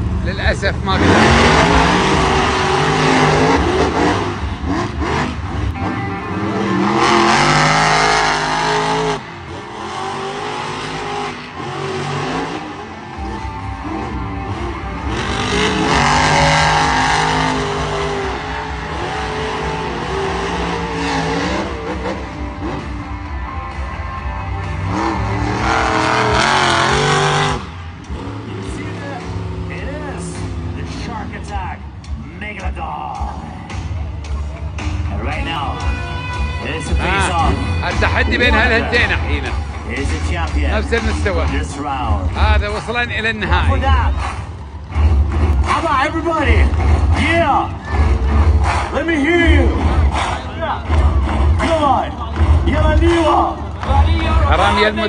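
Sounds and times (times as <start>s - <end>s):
monster truck engines revving: 0.0s - 55.0s.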